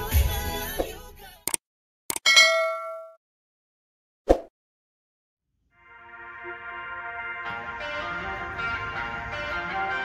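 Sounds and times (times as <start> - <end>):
quick clicks: 1.5 - 2.2
bright bell ding: 2.2 - 3.2.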